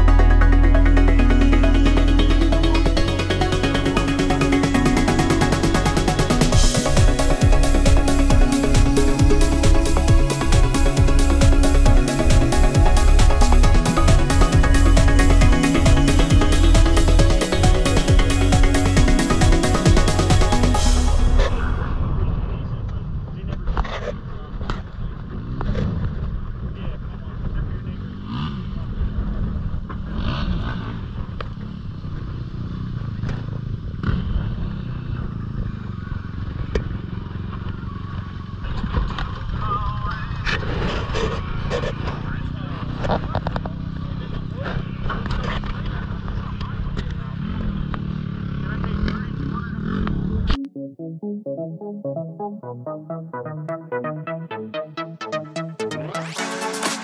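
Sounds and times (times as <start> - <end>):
indistinct voices: 0.0 - 23.6
vehicle engine idling: 31.1 - 49.7.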